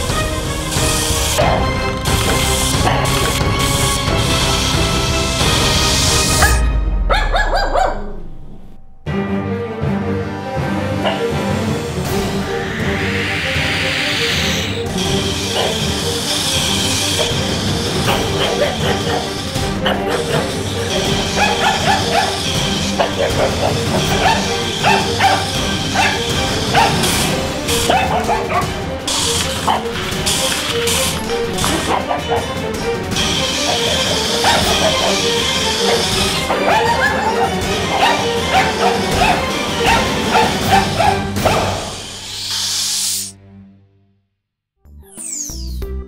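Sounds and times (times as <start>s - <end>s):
background music: 0.0s - 44.2s
small dog barking and yipping: 6.4s - 8.1s, 15.5s - 15.9s, 18.1s - 28.7s, 33.7s - 41.8s.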